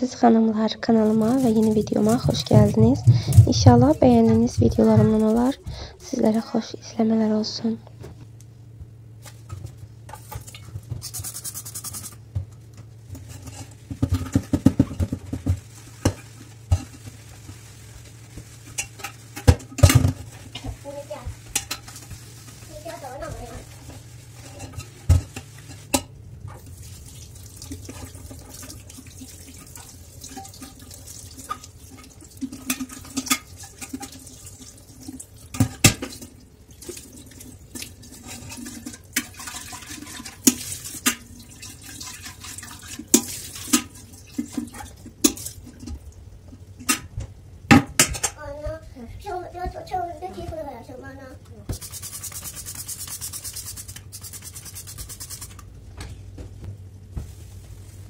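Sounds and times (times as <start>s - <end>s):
scrubbing steel sink: 0.1s - 7.8s, 9.2s - 46.0s, 51.7s - 55.7s.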